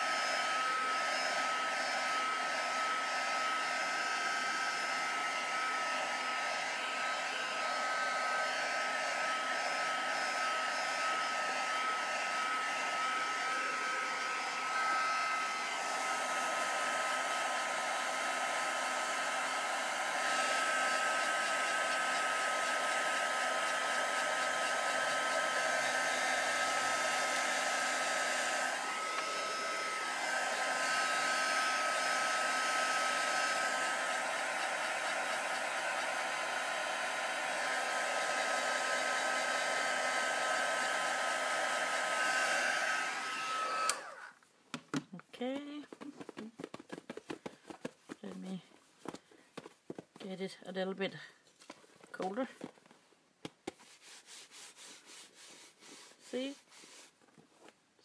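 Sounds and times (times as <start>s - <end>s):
heat dryer blowing with motor whine: 0.0s - 44.3s.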